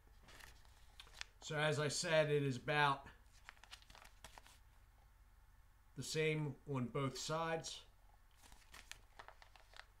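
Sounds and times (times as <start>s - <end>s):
plastic pouch crinkling: 0.3s - 1.4s, 3.3s - 4.6s, 8.3s - 10.0s.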